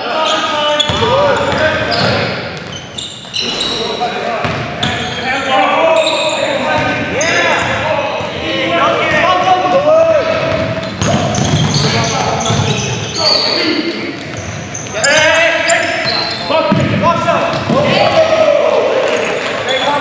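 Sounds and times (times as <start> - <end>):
sneakers squeaking: 0.0 - 18.4, 19.0 - 20.0
players' voices echoing: 0.0 - 20.0.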